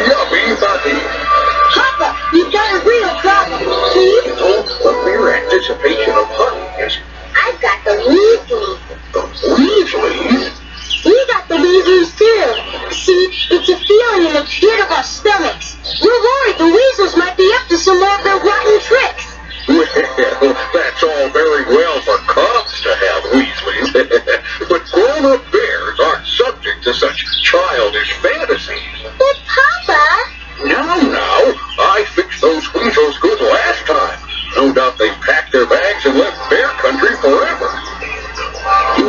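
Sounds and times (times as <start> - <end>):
cartoon music from tv speaker: 0.0 - 39.0
cartoon character voices: 1.7 - 10.5.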